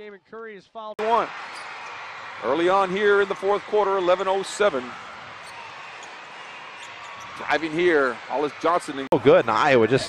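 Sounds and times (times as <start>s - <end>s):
arena crowd noise: 1.0s - 10.0s.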